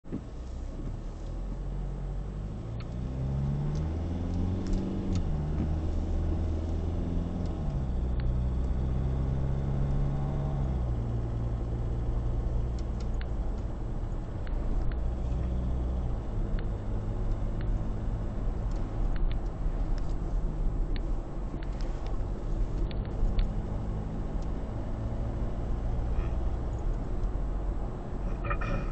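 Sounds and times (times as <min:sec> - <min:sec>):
road rumble: 0:00.0 - 0:28.9
car engine revving through gears: 0:00.2 - 0:28.9.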